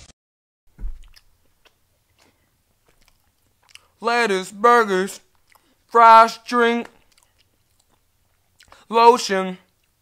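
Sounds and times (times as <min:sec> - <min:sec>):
soft thump: 0:00.7 - 0:01.1
chewing and lip smacks: 0:01.0 - 0:04.0, 0:05.2 - 0:06.0, 0:06.8 - 0:08.9, 0:09.7 - 0:10.0.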